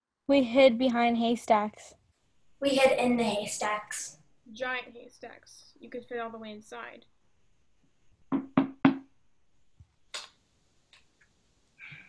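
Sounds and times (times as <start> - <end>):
knocking on wooden door: 8.3 - 9.1.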